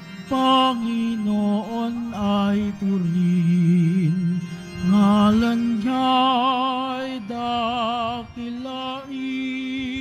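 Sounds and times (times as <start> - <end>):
hymn singing: 0.0 - 10.0.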